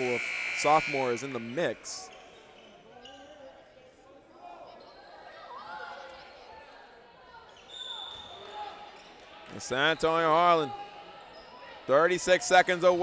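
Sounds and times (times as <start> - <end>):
crowd chatter: 0.0 - 13.0.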